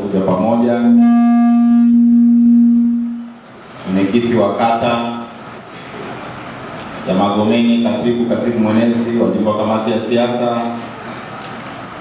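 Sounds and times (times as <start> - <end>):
steady held tone: 0.6 - 3.4.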